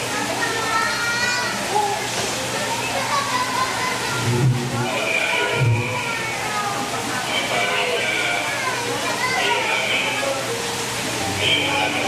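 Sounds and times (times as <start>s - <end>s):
overlapping voices: 4.2s - 6.1s.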